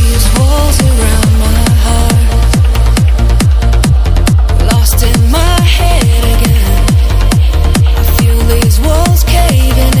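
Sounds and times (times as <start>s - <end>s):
steady kick drum: 0.0s - 10.0s
trance music: 0.0s - 10.0s.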